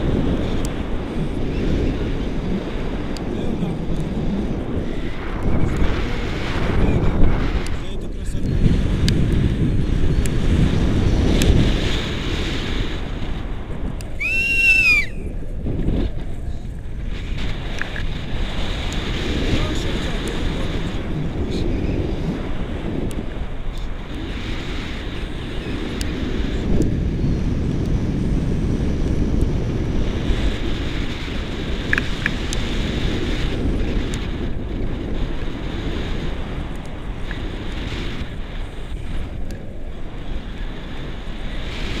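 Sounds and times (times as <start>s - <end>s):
wind rushing over microphone: 0.0s - 42.0s.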